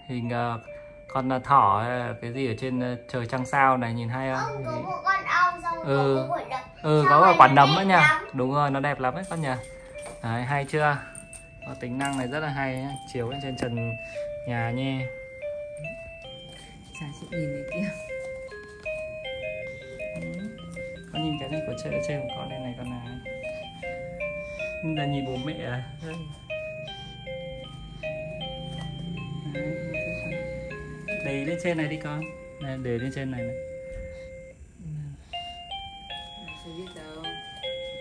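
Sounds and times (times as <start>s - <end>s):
electronic music box lullaby: 0.0s - 38.0s.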